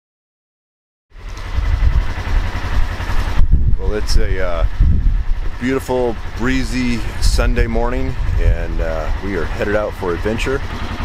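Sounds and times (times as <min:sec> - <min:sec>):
wind buffeting microphone: 0:01.4 - 0:09.7.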